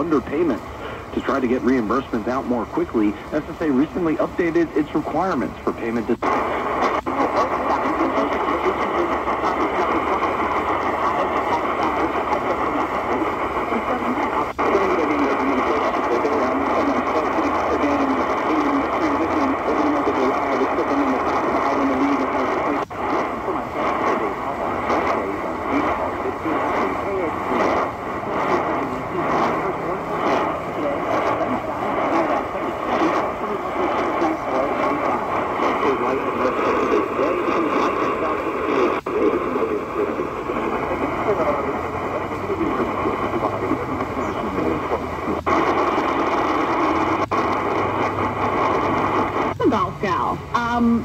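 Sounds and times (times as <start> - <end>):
faint voice on radio: 0.0 - 51.0
radio static hiss: 0.0 - 51.0.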